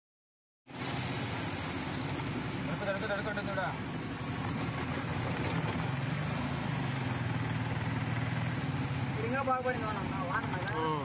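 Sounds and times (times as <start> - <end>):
rain and road hiss: 0.7 - 11.0.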